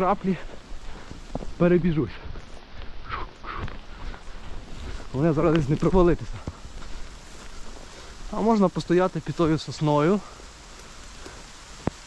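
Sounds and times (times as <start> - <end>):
rain falling through trees: 0.0 - 12.0.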